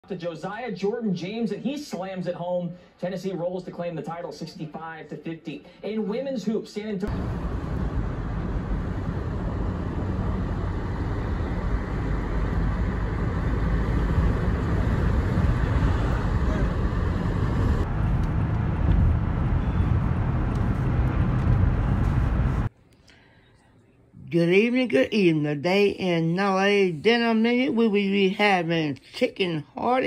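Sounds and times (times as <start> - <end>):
car road noise: 7.1 - 22.7.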